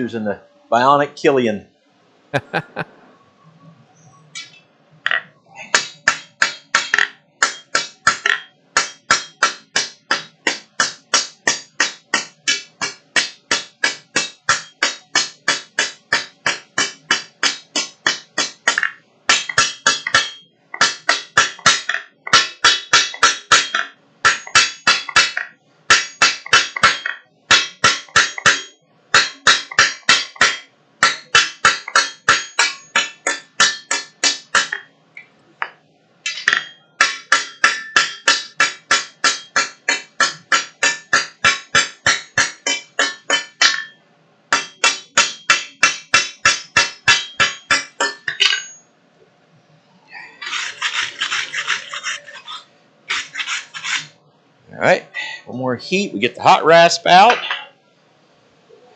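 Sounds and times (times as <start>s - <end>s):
hammer striking steel on anvil: 4.4s - 34.9s, 35.6s - 48.8s.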